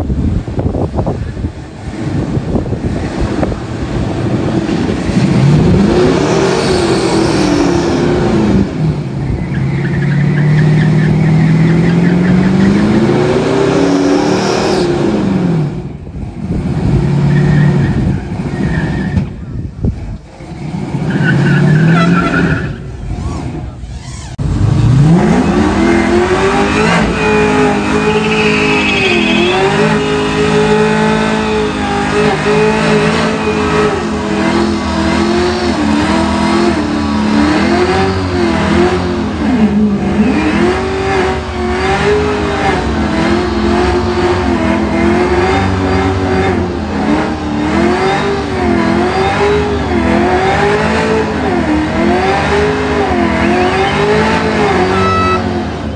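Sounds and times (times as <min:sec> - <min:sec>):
truck engine revving high: 0:00.0 - 0:55.9.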